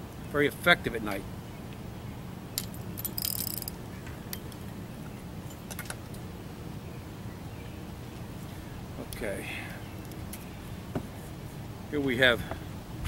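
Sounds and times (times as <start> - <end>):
steady low hum: 0.0 - 13.0
fishing tackle clinking: 2.6 - 4.6.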